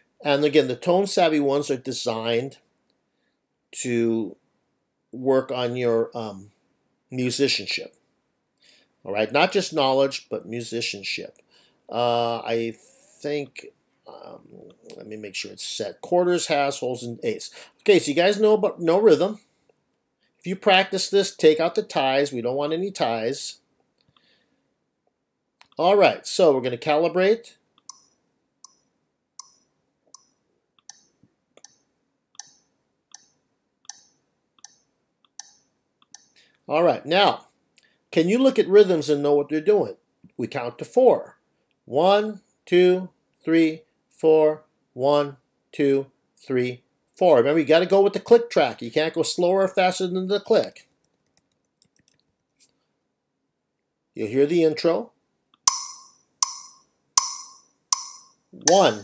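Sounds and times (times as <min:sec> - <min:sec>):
faint metronome clicks: 0:27.8 - 0:31.8, 0:32.4 - 0:36.4, 0:55.5 - 0:59.0.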